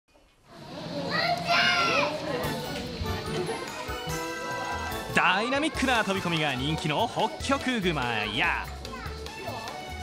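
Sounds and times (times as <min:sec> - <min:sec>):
children calling out: 0:00.6 - 0:02.4.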